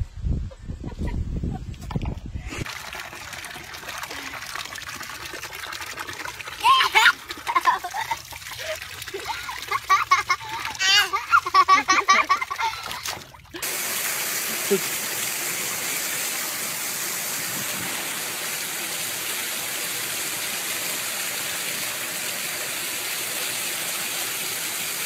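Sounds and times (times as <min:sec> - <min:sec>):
water pouring into plastic pool: 0:02.6 - 0:25.0
baby squealing and babbling: 0:10.8 - 0:11.3.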